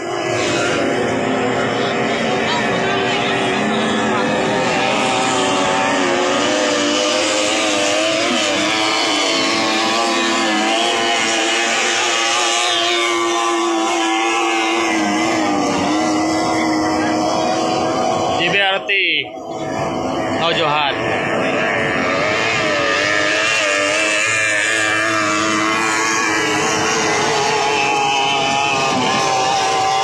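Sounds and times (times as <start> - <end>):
outboard motors whining: 0.0 - 30.0.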